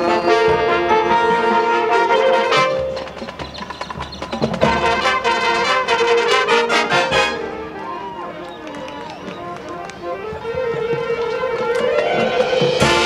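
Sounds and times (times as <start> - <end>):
marching band brass chords: 0.0 - 13.0.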